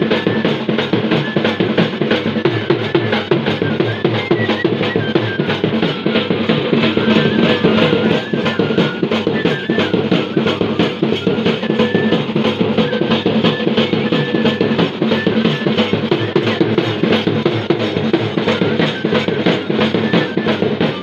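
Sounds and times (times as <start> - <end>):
flute playing high melody: 0.0 - 21.0
small metal drum beaten with sticks: 0.0 - 21.0.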